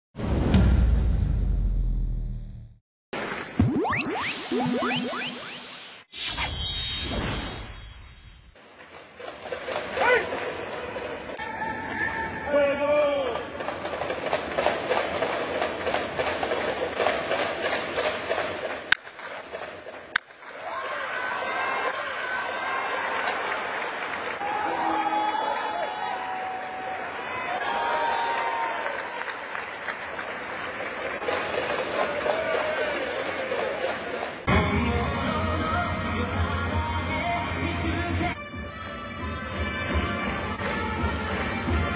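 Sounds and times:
crowd clapping and murmuring: 20.1s - 24.4s, 28.3s - 34.5s.

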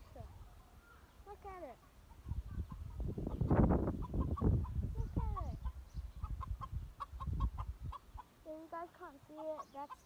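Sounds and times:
chicken clucking: 1.8s - 8.4s, 9.3s - 10.0s.

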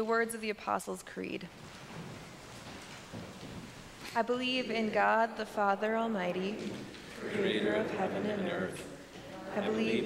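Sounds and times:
congregation rustling and shuffling: 0.0s - 10.0s.

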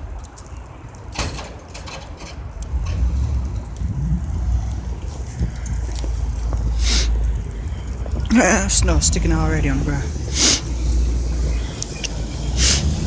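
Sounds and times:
truck engine rumble: 0.0s - 13.0s
short hisses: 6.8s - 7.1s, 10.3s - 10.8s, 12.4s - 13.0s.

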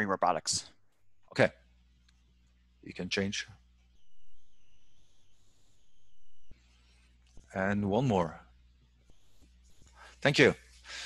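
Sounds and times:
background hiss: 0.4s - 11.0s
thin high-pitched whine: 3.8s - 10.6s.

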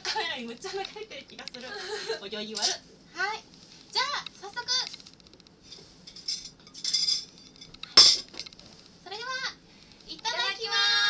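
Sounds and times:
tableware clinking: 6.1s - 8.5s.

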